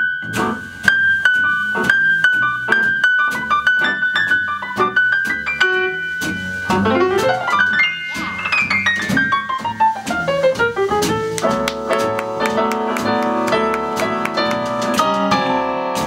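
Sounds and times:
jazz piano: 0.0 - 16.0.

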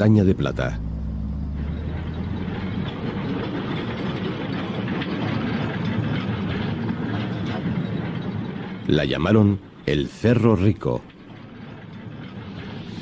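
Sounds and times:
cart wheels rattling on rails: 0.0 - 13.0.

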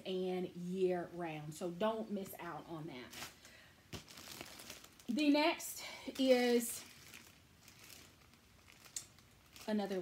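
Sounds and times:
plastic wrapping crinkling: 3.0 - 10.0.

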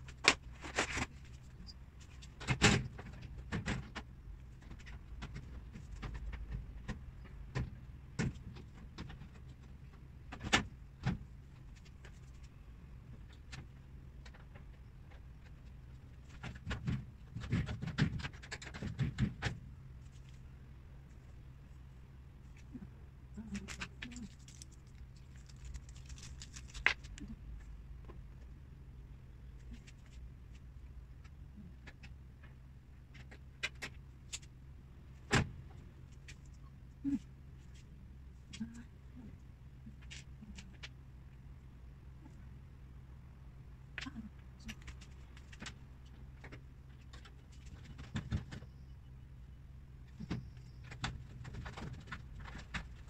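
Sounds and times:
low steady hum: 0.0 - 53.0.

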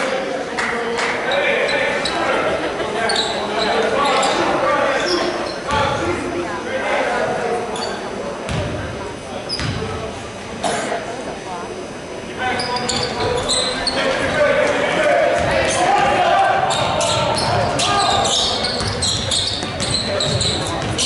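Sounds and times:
crowd voices echoing: 0.0 - 21.0.

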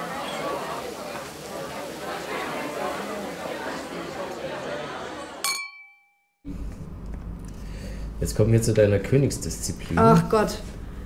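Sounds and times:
chatter of voices: 0.0 - 5.4
glass clinking: 5.4 - 6.3.

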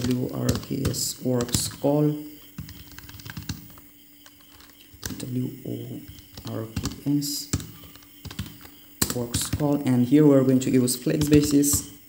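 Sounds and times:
computer keyboard typing: 0.0 - 10.0, 11.0 - 12.0.

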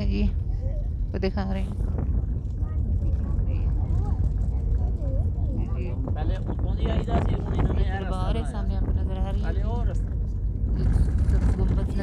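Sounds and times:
car rumbling over dirt track: 0.0 - 12.0.

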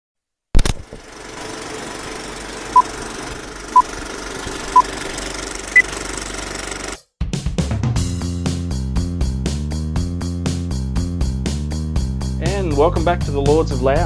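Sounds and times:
film projector rattle and hiss: 0.6 - 7.0
music: 7.0 - 14.0.

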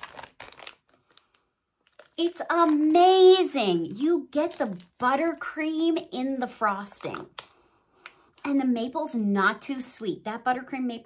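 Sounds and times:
plastic packaging crinkling and clicking: 0.0 - 5.4, 6.9 - 8.5.

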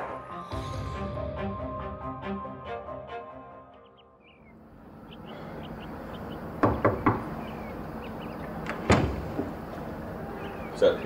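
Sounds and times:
knocking on a door: 6.6 - 7.4
loud thud: 8.8 - 9.6.

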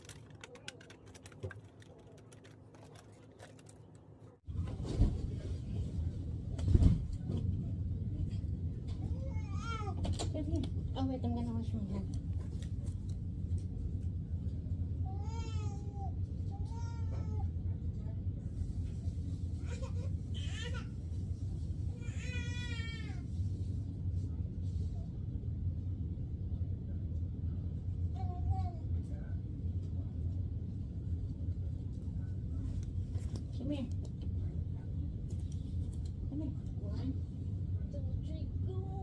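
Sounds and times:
low hum: 0.0 - 39.0
steady low rumble: 0.0 - 39.0.

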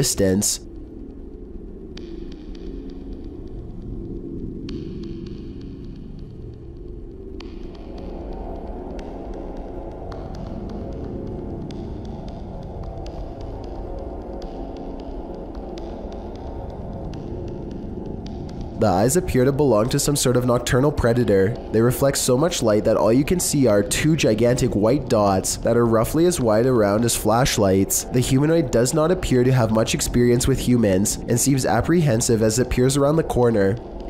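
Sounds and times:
low throbbing hum: 0.0 - 34.0.

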